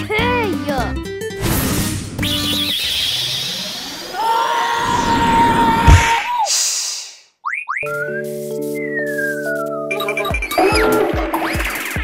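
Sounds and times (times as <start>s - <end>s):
background music: 0.0s - 2.7s, 7.9s - 12.0s
loud thump: 5.8s - 6.2s.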